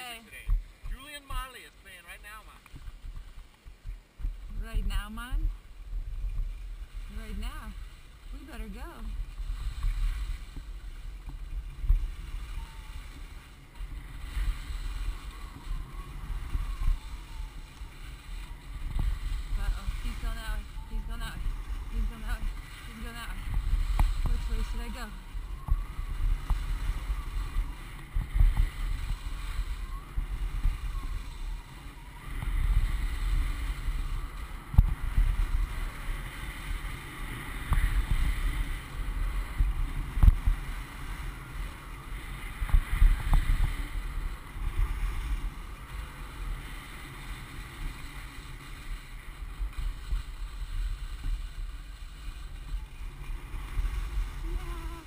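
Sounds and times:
skis scraping on packed snow: 0:00.0 - 0:55.0
wind buffeting microphone: 0:02.2 - 0:55.0
faint voices: 0:51.7 - 0:55.0.

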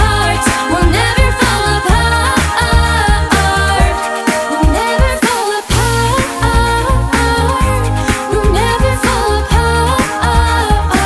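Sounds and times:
sung bass line: 0:00.0 - 0:04.0, 0:04.6 - 0:11.0
vocal group singing in harmony: 0:00.0 - 0:11.0.

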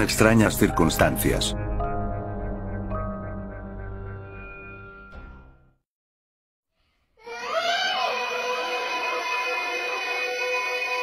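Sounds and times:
background music with held tones: 0:00.0 - 0:05.8.

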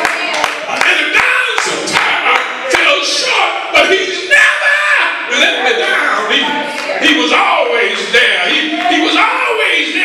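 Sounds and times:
congregation clapping in rhythm: 0:00.0 - 0:04.0, 0:05.7 - 0:10.0.

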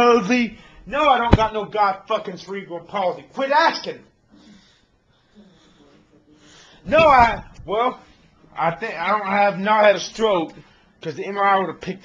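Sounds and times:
man breathing: 0:00.6 - 0:00.9, 0:04.3 - 0:08.5.

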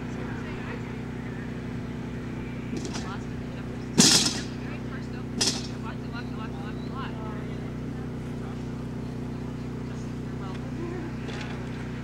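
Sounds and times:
distant voices calling: 0:00.0 - 0:12.0
steady low hum: 0:00.0 - 0:12.0.

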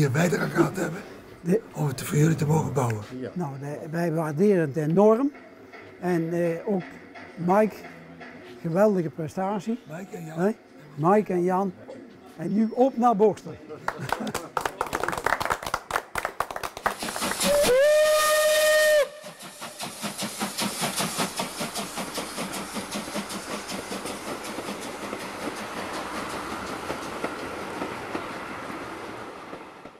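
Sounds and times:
train running rhythmic beat: 0:04.7 - 0:09.3, 0:13.9 - 0:29.9
group clapping: 0:13.9 - 0:17.6
steam locomotive whistle: 0:17.2 - 0:19.8.

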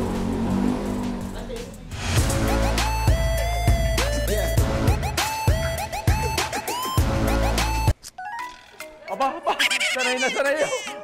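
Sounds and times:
vehicle engine humming: 0:00.0 - 0:02.0.

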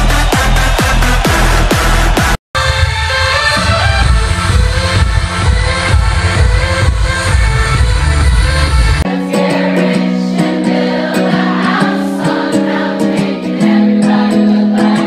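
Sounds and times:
electronic dance music with heavy bass: 0:00.0 - 0:09.1.

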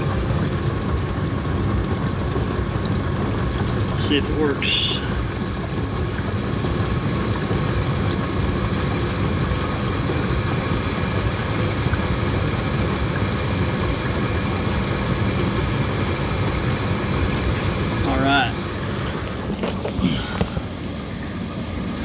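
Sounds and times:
dishwasher pump droning: 0:00.0 - 0:22.0
water circulating: 0:00.0 - 0:22.0.

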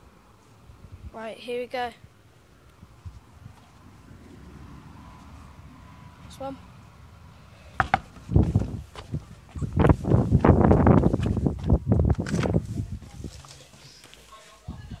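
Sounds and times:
running footsteps: 0:07.8 - 0:12.2.

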